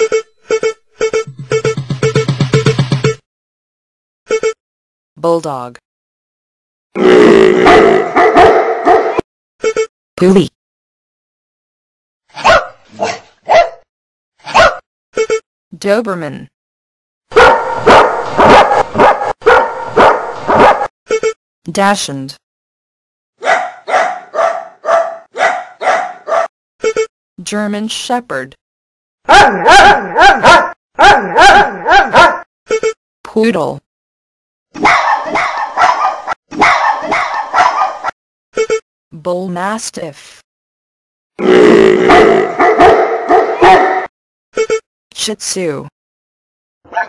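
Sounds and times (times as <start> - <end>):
dog barking: 7.6 - 9.2, 12.4 - 13.8, 14.4 - 14.9, 17.3 - 20.9, 23.4 - 26.5, 29.3 - 32.4, 34.8 - 38.2, 42.1 - 44.1.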